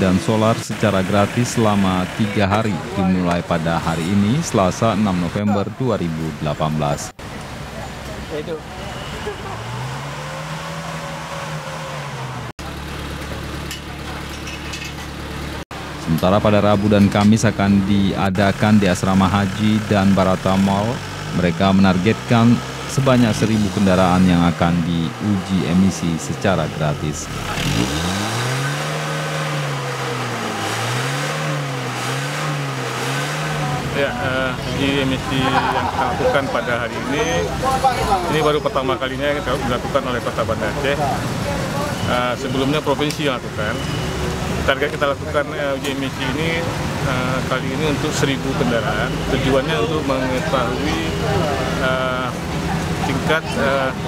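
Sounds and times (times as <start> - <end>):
car engine idling and revving: 0.0 - 54.0.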